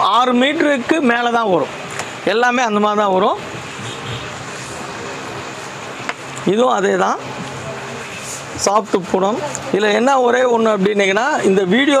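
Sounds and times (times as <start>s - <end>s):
steady rushing noise: 0.0s - 10.5s.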